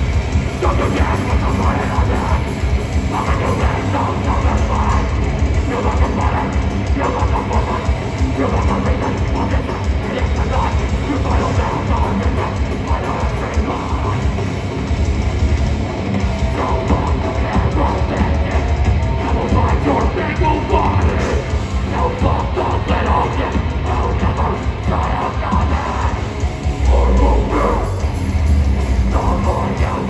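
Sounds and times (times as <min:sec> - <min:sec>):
bass guitar: 0:00.0 - 0:30.0
distorted electric guitars: 0:00.0 - 0:30.0
drums: 0:00.0 - 0:30.0.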